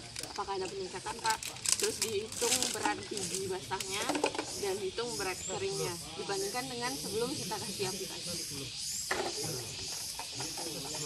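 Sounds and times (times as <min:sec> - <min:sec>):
indistinct voices talking: 0:00.0 - 0:11.0
steady high-pitched hiss: 0:00.0 - 0:11.0.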